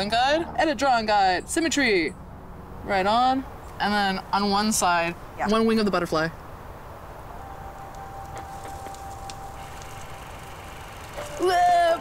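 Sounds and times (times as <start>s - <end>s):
distant traffic rumble: 0.0s - 12.0s
faint ticks: 7.9s - 11.4s.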